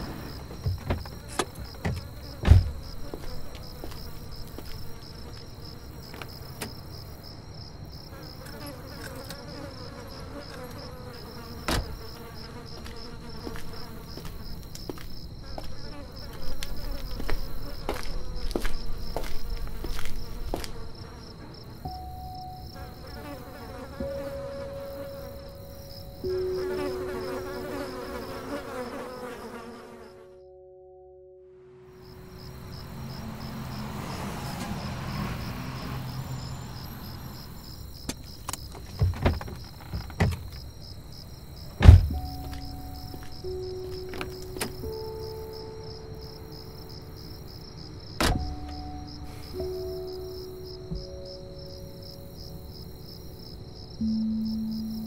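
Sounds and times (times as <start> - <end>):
crickets chirping: 0.0 - 30.8, 31.6 - 55.0.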